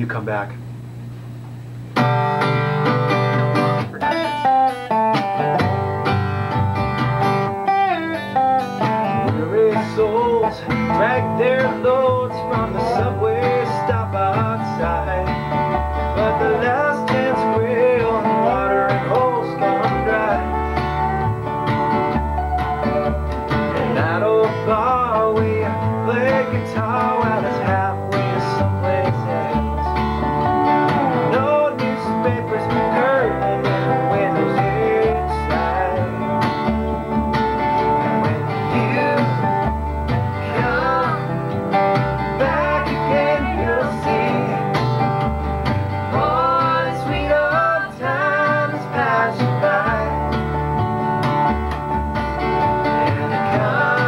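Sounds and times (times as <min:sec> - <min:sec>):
acoustic guitar: 0:00.0 - 0:54.0
upright bass: 0:00.0 - 0:54.0
slide dobro: 0:01.8 - 0:54.0.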